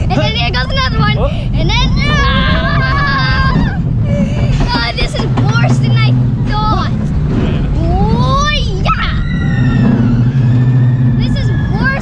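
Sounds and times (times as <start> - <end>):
voices: 0.0 - 10.0, 11.1 - 12.0
roller coaster rumbling on track: 0.0 - 12.0.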